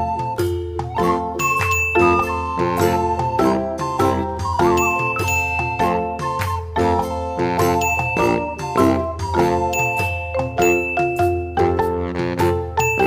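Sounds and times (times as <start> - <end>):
light tune with chiming notes: 0.0 - 13.0.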